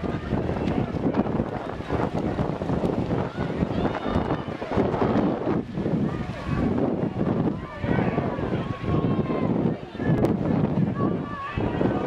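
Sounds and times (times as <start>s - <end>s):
spectators shouting and cheering: 0.0s - 12.0s
wind rumble on microphone: 0.0s - 12.0s.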